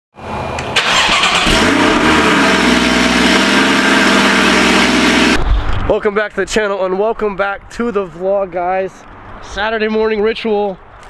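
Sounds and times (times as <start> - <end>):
car engine starting and running: 0.2 - 5.8.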